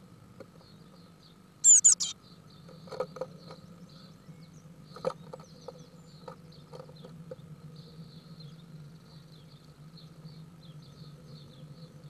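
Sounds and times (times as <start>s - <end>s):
faint steady hum: 0.0s - 2.5s
nestling birds chirping: 1.6s - 2.1s.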